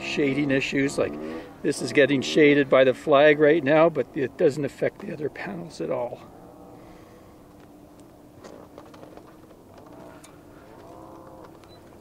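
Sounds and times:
low steady hum: 0.0s - 12.0s
faint animal calls: 9.8s - 11.9s.

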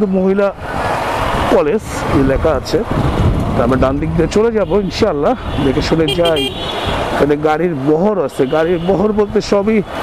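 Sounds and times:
man talking: 0.0s - 0.6s, 1.5s - 2.9s, 3.5s - 6.6s, 7.2s - 9.9s
motorcycle road noise: 0.0s - 10.0s
wind noise: 0.4s - 7.5s.

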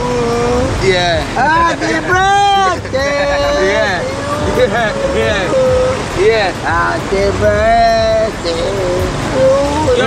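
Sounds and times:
men talking: 0.0s - 10.0s
river water rushing: 0.0s - 10.0s.

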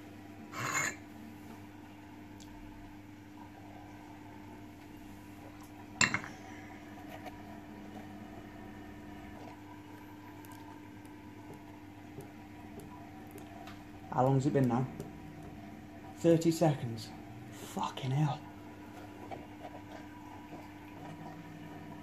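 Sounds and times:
steady low hum: 0.0s - 22.0s
tableware clinking: 6.0s - 6.3s.

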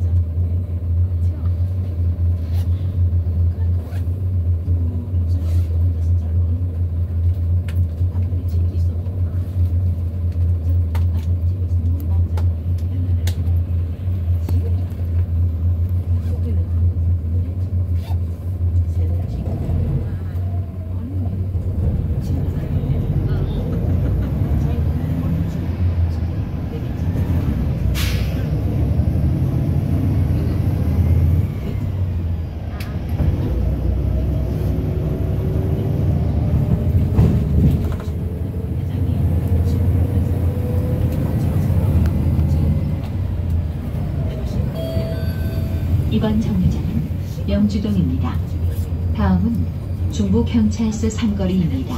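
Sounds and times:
bus engine drone: 0.0s - 51.9s
road rumble: 0.0s - 51.9s.

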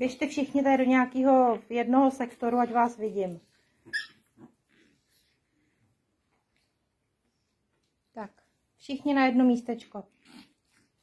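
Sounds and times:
puppies squeaking: 3.8s - 4.5s.

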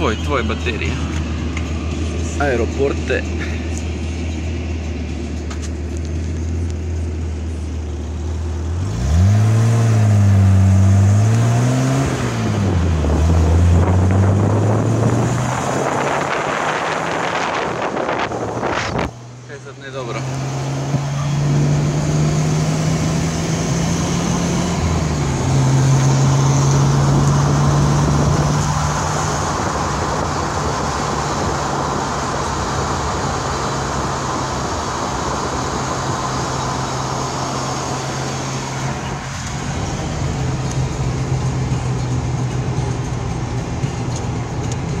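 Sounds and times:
car engine pulling: 0.0s - 45.0s
road noise: 0.0s - 45.0s.

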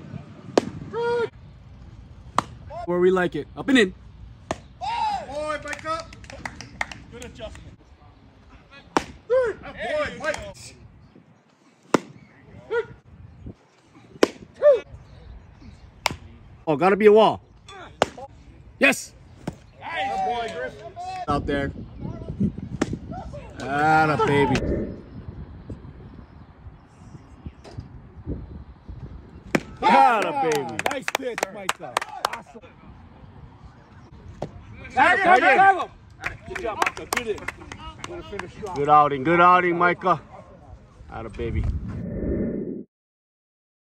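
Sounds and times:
baseball smacking: 0.5s - 0.8s, 2.3s - 2.7s, 4.4s - 4.7s, 8.9s - 9.2s, 11.9s - 12.2s, 14.2s - 14.5s, 18.0s - 18.3s, 22.8s - 23.0s, 29.5s - 29.8s
players shouting: 4.7s - 6.1s.

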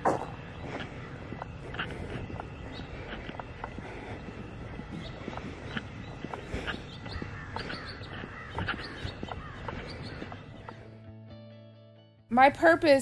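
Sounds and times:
birds chirping and calling: 0.0s - 11.1s
footsteps on paved road: 0.0s - 11.2s.

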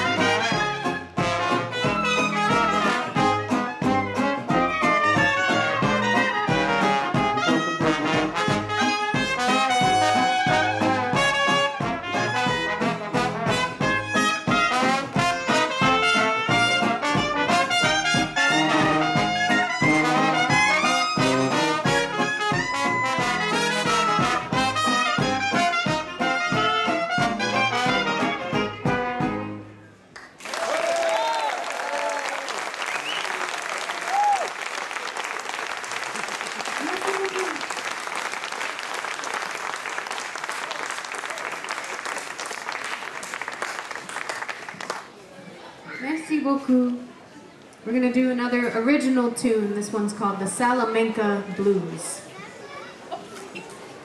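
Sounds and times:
jazz band playing: 0.0s - 29.9s
audience applause: 30.2s - 45.2s
scattered cheers: 30.4s - 37.8s.

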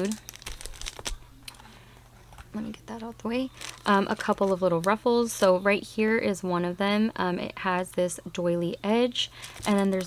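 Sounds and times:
plastic packaging crinkling: 0.0s - 1.7s, 3.4s - 5.0s, 9.3s - 10.0s.

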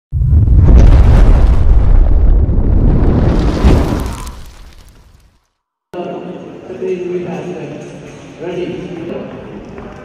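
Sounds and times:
deep explosion rumble: 0.1s - 4.8s.

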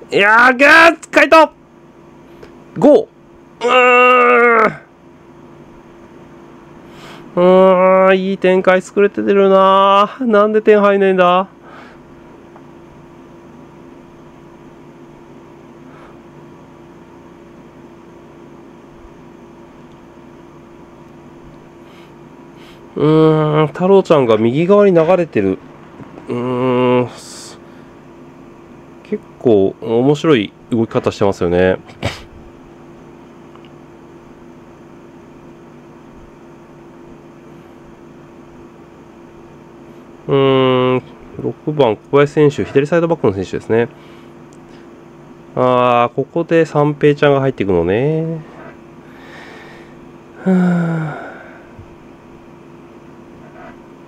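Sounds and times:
air conditioner hiss and hum: 0.0s - 54.0s.

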